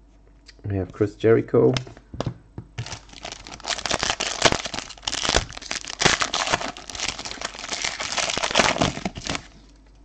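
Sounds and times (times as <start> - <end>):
foil wrapper crinkling: 2.8 - 9.6.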